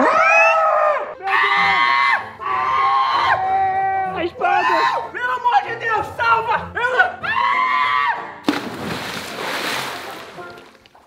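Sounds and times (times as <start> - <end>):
person diving into pool: 8.4 - 10.9
churning water: 8.4 - 11.0
water splash: 8.4 - 11.0.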